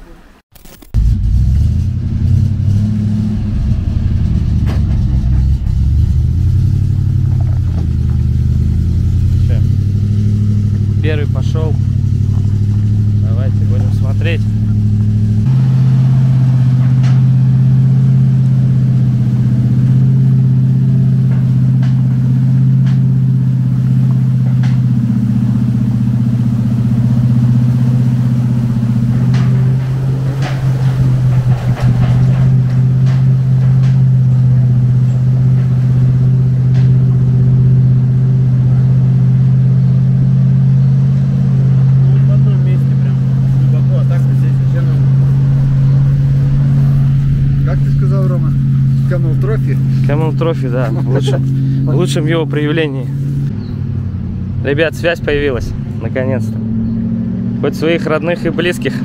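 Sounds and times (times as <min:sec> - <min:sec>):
vehicle engine running: 0:00.0 - 0:59.0
clattering: 0:01.1 - 0:54.0.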